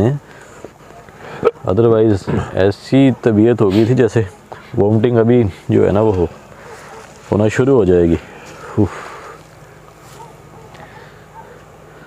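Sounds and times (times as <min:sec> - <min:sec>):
distant tractor engine drone: 0:00.0 - 0:12.0.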